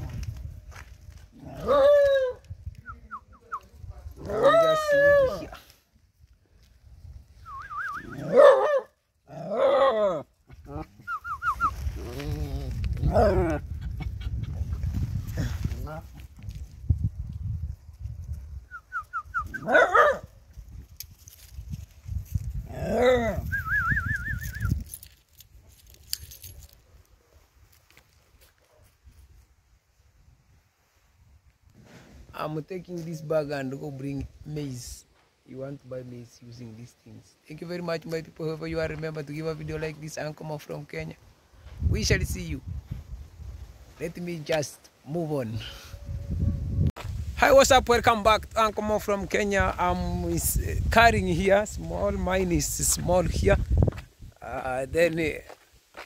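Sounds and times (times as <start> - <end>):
young dog yelping and whining: 1.5 - 2.4, 4.2 - 5.6, 8.1 - 10.9, 19.5 - 20.2.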